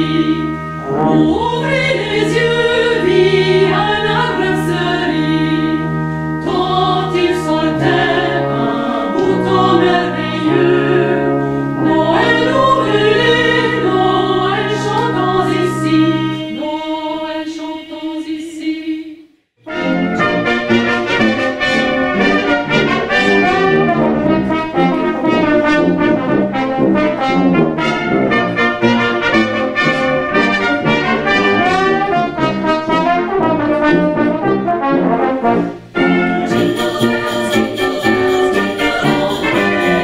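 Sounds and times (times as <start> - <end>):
brass quintet playing: 0.0 - 17.0, 19.6 - 40.0
women's voices singing chord: 0.0 - 19.2, 36.1 - 40.0.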